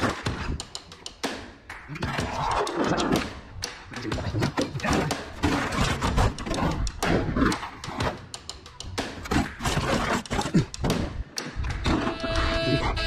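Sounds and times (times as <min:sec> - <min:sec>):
music: 0:00.0 - 0:13.0.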